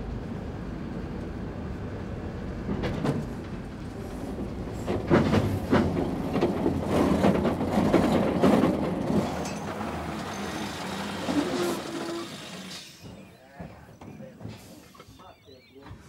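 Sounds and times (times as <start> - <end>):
bus rattling and clattering: 0.0 - 15.2.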